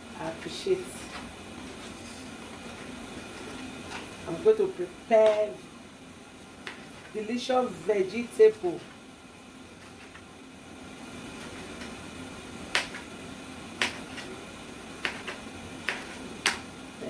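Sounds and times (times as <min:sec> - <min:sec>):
knife slicing tomatoes: 0:13.8 - 0:14.4, 0:15.0 - 0:16.6.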